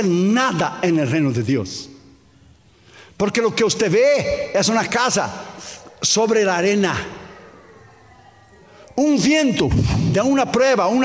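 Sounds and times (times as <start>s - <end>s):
echo of man preaching: 0.0s - 2.4s, 3.0s - 11.0s.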